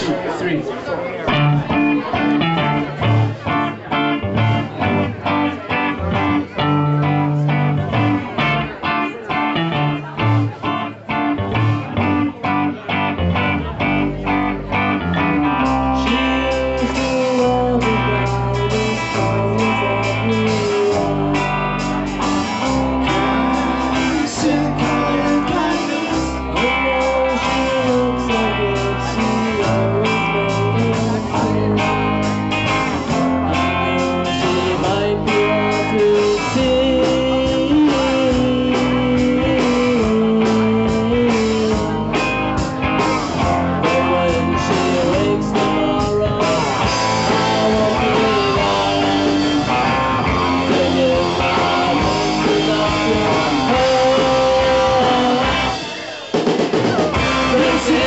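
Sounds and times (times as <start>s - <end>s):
electric guitars: 1.0s - 58.0s
drums: 1.2s - 58.0s
live rock band playing: 1.2s - 58.0s
heavy bass line: 1.3s - 58.0s.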